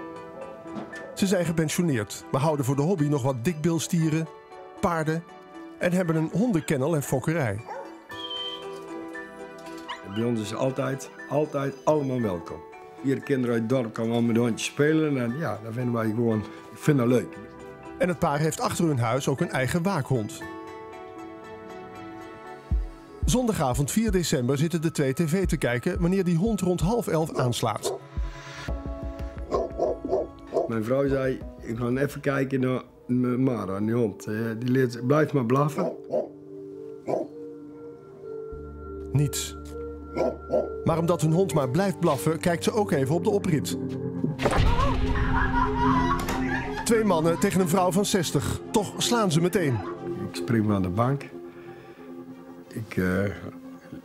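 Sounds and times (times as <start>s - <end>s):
background music chords: 0.0s - 54.0s
dog barking: 0.4s - 1.2s, 7.6s - 8.0s, 27.3s - 28.0s, 29.5s - 30.7s, 35.8s - 36.4s, 37.0s - 37.3s, 40.1s - 40.8s
puppies whining: 7.6s - 9.0s, 9.6s - 10.6s, 29.5s - 30.7s, 40.1s - 40.8s.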